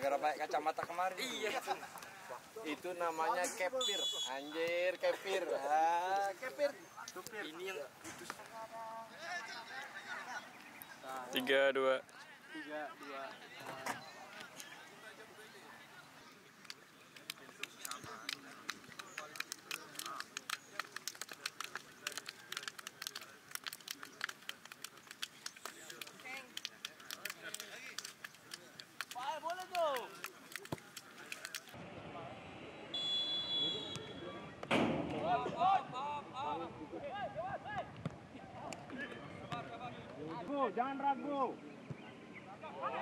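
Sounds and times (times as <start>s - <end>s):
voices: 0.0s - 43.0s
high whistle: 3.8s - 4.5s, 32.9s - 34.1s
hand slaps and claps: 16.6s - 31.8s.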